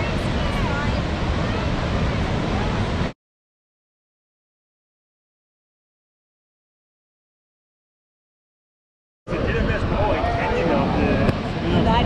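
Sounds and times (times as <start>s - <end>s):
people talking: 0.0s - 3.0s, 9.3s - 12.0s.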